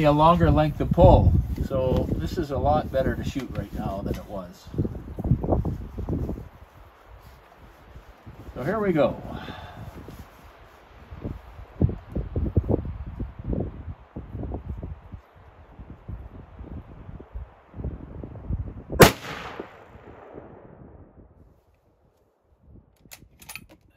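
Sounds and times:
rustling: 0:00.0 - 0:11.7
rifle shot with rolling echo: 0:19.0 - 0:21.2.

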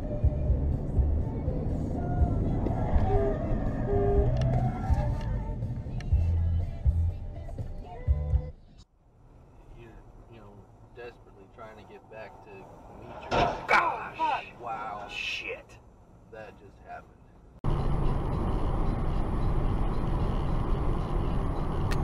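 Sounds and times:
road and engine noise inside car: 0:00.0 - 0:22.0
car crash impact: 0:13.0 - 0:14.0
voices exclaiming: 0:13.3 - 0:15.7.

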